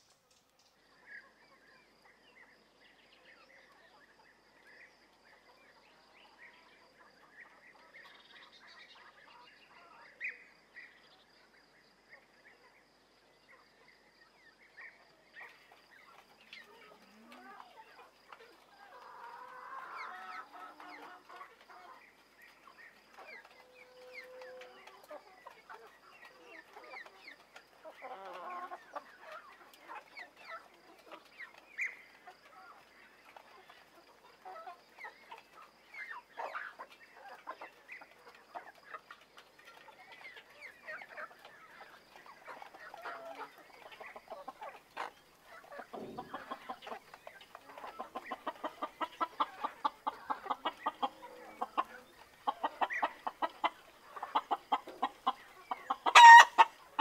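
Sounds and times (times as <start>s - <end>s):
small birds chirping: 0.0s - 57.0s
hen clucking softly: 14.8s - 57.0s.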